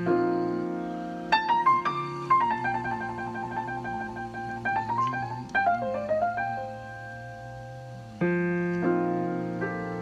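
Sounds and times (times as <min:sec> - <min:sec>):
solo jazz piano ballad: 0:00.0 - 0:10.0.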